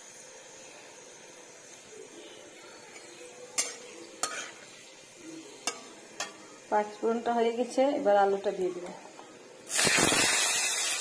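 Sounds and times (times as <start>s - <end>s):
faint frying sizzle: 0.0s - 11.0s
spatula scraping metal wok: 3.0s - 4.8s.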